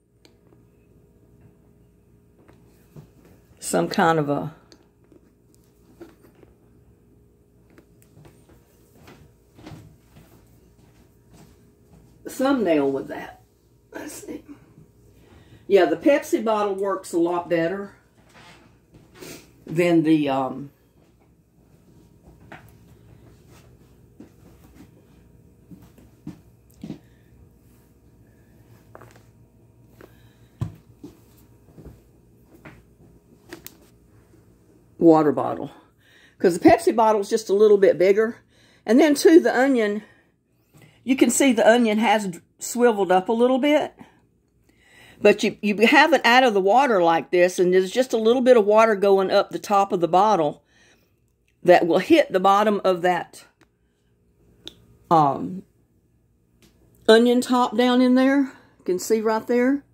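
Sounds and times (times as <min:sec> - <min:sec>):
low room hum: 0:00.0 - 0:59.9
faint knocks and rustles of handling: 0:04.9 - 0:06.8, 0:07.6 - 0:12.2, 0:20.9 - 0:34.5.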